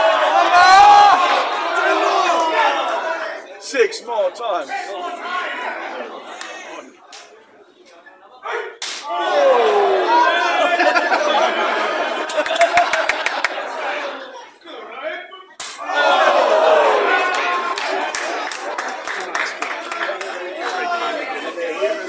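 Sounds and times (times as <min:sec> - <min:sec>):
crowd yelling: 0:00.0 - 0:06.9, 0:08.4 - 0:14.4, 0:15.7 - 0:22.0
loud slapping strikes: 0:08.8 - 0:09.1, 0:15.6 - 0:15.9.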